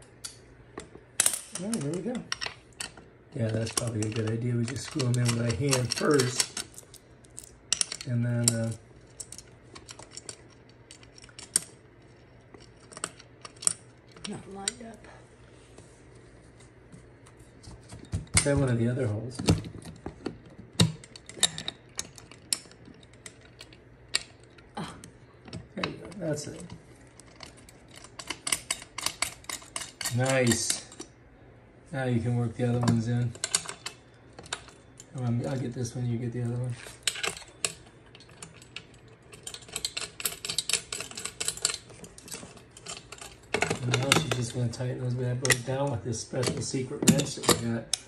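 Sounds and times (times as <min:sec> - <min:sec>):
metallic clicks of bolts and washers: 0:00.1 - 0:11.7, 0:26.6 - 0:31.1, 0:36.8 - 0:44.6.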